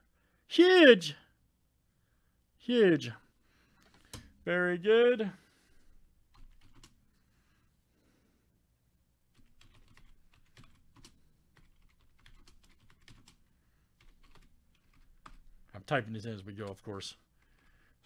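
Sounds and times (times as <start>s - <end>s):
typing on computer keyboard: 6.3s - 7.0s, 9.3s - 13.4s, 14.0s - 15.5s.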